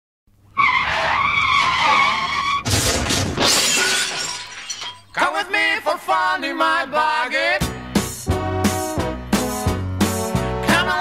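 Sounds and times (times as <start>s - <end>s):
car tyres screeching: 0.5s - 3.1s
car crash: 0.7s - 5.3s
debris settling: 2.7s - 5.4s
glass shattering: 2.7s - 5.4s
music with singing: 5.2s - 11.0s.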